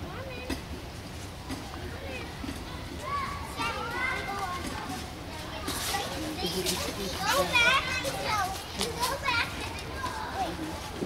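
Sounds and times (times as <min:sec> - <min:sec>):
young children playing: 0:00.0 - 0:11.0.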